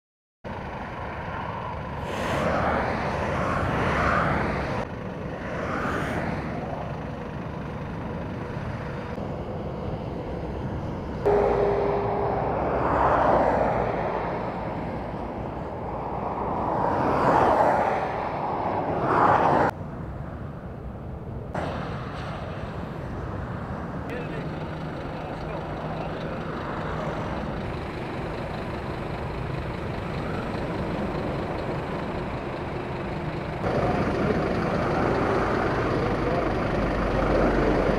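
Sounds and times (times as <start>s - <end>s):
road rumble: 0.4s - 37.9s
vehicles whooshing past: 0.5s - 37.9s.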